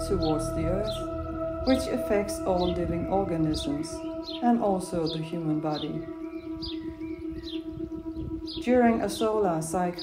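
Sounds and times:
birds chirping softly: 0:00.0 - 0:10.0
meditation drone: 0:00.0 - 0:10.0.

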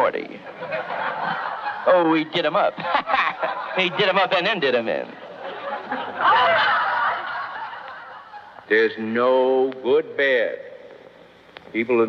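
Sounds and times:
audience laughing: 0:00.4 - 0:08.7.

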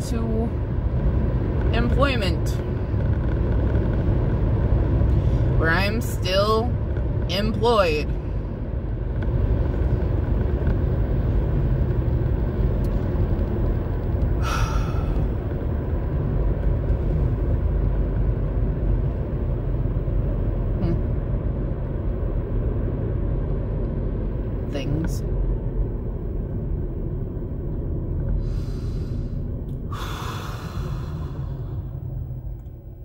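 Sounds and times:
car road and engine rumble: 0:00.0 - 0:33.0.

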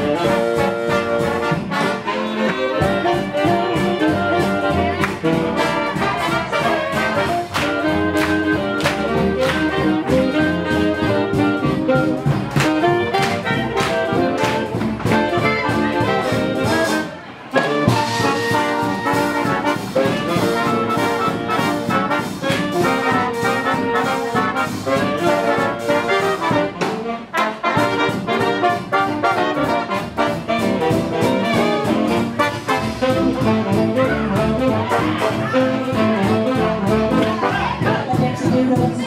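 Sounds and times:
big band playing swing jazz: 0:00.0 - 0:39.0.

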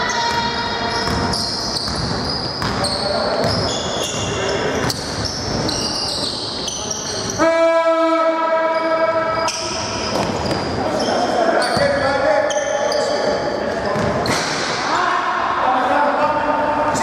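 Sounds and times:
sneakers squeaking on gym floor: 0:00.0 - 0:07.4, 0:08.7 - 0:14.6.

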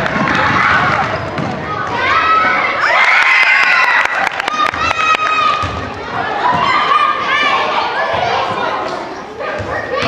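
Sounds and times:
children screaming and cheering: 0:02.0 - 0:05.8.

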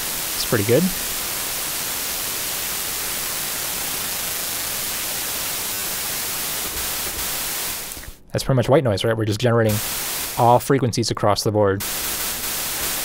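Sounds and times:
steady synthesizer hiss: 0:00.0 - 0:08.2, 0:09.7 - 0:10.7, 0:11.8 - 0:13.0.

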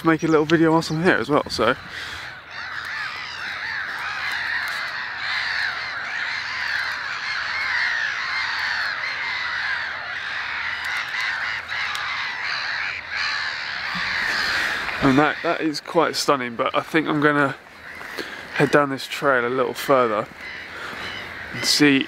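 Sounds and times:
flock of birds calling: 0:00.0 - 0:22.0.

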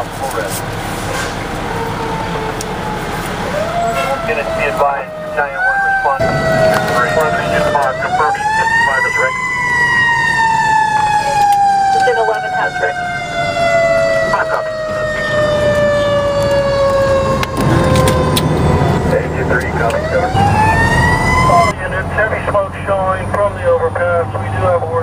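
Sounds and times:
fire truck siren wailing: 0:00.0 - 0:24.8
truck engine and road noise: 0:00.0 - 0:25.0.

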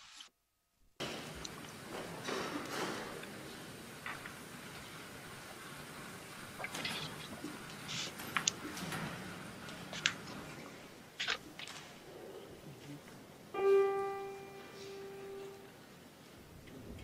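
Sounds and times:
room noise hiss: 0:00.0 - 0:17.0
small clicks and rustles: 0:06.6 - 0:12.0.

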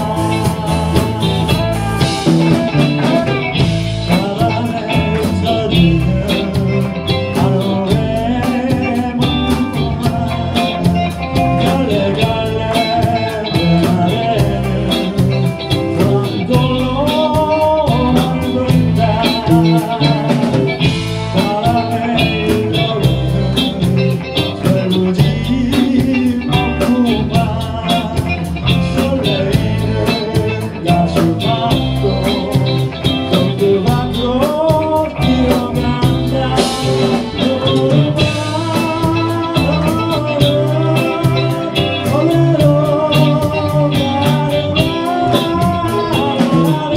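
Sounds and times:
live rock band playing: 0:00.0 - 0:46.9
man singing into microphone: 0:00.0 - 0:46.9.

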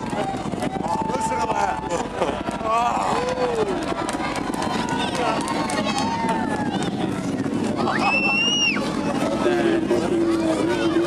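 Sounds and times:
spectators cheering: 0:00.0 - 0:07.2, 0:07.8 - 0:09.0.

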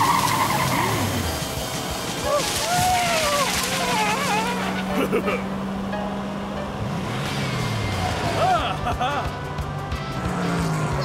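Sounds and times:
rushing hiss of leaves: 0:00.0 - 0:04.9
cartoon vehicle engine hum: 0:00.0 - 0:11.0
squeaky wordless yelps: 0:02.3 - 0:05.0.

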